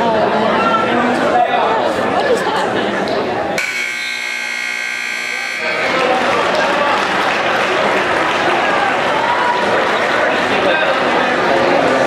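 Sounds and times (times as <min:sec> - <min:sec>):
crowd chatter: 0:00.0 - 0:12.0
scoreboard buzzer: 0:03.6 - 0:05.9.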